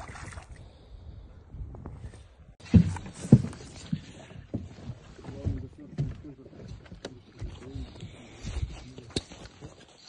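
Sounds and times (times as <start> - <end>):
footsteps on dry forest ground: 2.6 - 10.0
dry grass rustling underfoot: 7.2 - 10.0.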